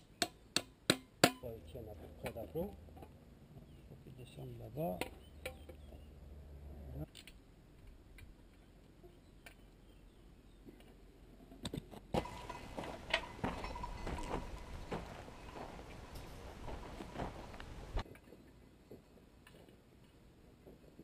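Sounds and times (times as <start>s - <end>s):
light clicks and knocks of tools: 10.7s - 14.7s.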